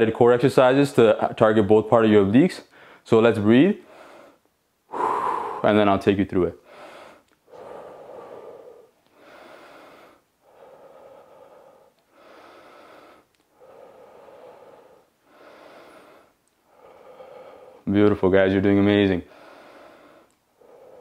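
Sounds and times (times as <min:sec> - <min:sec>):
man breathing deeply: 0:02.7 - 0:03.0, 0:03.8 - 0:06.0, 0:06.6 - 0:18.0, 0:19.2 - 0:21.0.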